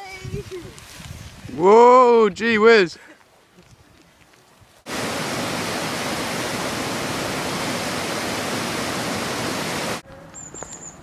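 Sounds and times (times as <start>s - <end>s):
loud static hiss: 4.9s - 10.0s.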